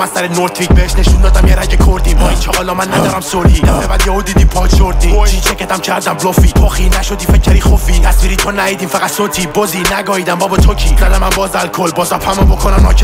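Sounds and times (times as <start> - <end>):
rapping over a hip-hop beat: 0.0 - 13.0
deep sub-bass notes: 0.7 - 5.5.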